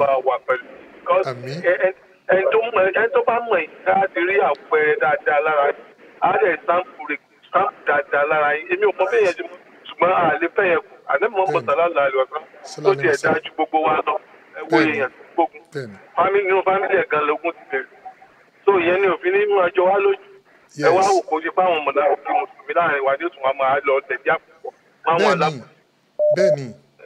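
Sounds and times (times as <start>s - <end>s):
man talking over a phone line: 0.0s - 15.1s, 15.8s - 17.8s, 20.8s - 24.4s, 25.1s - 26.8s
man's voice: 1.1s - 5.7s, 7.6s - 15.1s, 15.7s - 17.5s, 20.7s - 23.0s, 25.1s - 25.7s, 26.3s - 26.8s
electronic beep: 26.2s - 26.8s.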